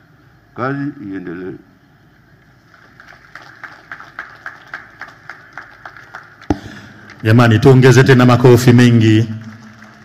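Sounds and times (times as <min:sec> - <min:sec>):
hands clapping: 0:02.8 - 0:07.2, 0:09.3 - 0:10.0
loud thump: 0:06.5 - 0:06.9.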